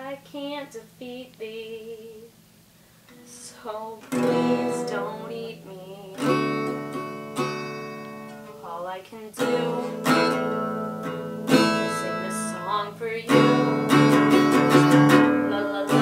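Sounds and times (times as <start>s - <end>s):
acoustic guitar strumming chords: 3.9s - 16.0s.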